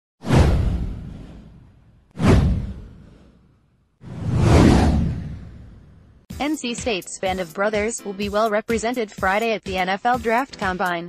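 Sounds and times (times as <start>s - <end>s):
low boom: 0.2s - 6.3s
whoosh: 0.2s - 6.3s.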